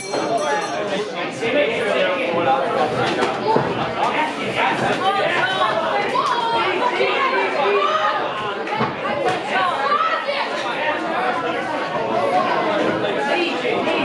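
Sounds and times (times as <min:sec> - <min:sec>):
crowd shouting and talking: 0:00.0 - 0:14.0.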